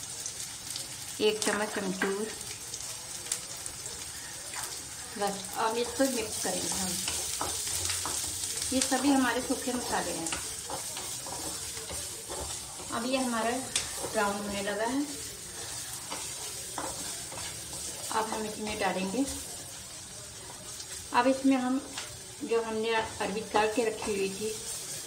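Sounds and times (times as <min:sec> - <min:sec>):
onions sizzling in hot oil: 0:00.0 - 0:25.0
spatula scraping a pan: 0:04.5 - 0:19.7.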